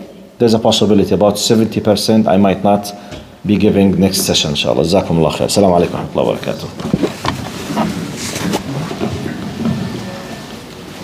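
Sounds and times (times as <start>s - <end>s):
rustling: 6.7s - 11.0s
scrapes and knocks on microphone: 6.8s - 10.0s
faint indistinct voices: 8.5s - 11.0s.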